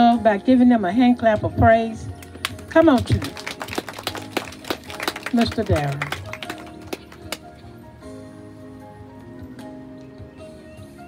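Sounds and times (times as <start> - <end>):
music with long held notes: 0.0 - 11.0
people clapping: 2.2 - 7.5.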